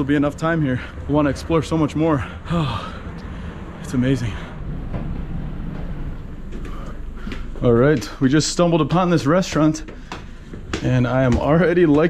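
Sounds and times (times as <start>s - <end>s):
low rumble: 1.2s - 9.3s.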